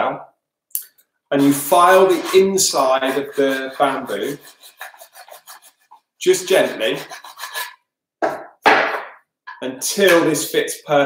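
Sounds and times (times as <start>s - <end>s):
file rasping inside bamboo tube: 1.4s - 7.8s.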